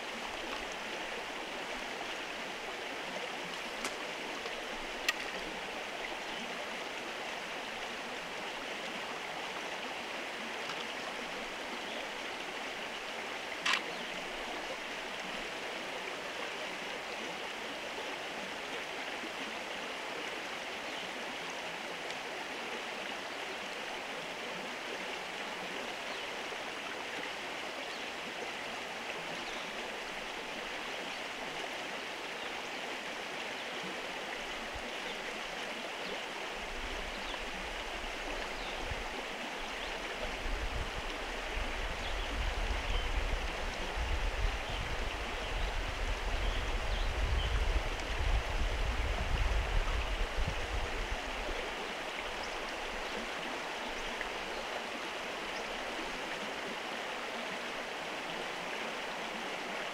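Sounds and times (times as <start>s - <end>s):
rushing water: 0.0s - 59.9s.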